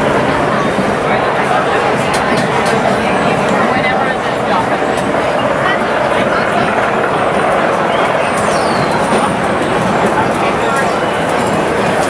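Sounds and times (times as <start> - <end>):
busy food market din: 0.0 - 12.0.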